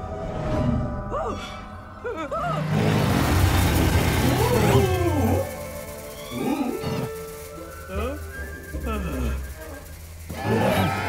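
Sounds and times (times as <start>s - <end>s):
eerie music: 0.0s - 11.0s.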